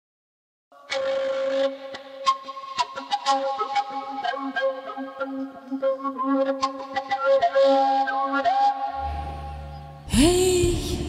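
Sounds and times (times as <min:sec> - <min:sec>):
breathy flute melody: 0:00.7 - 0:11.0.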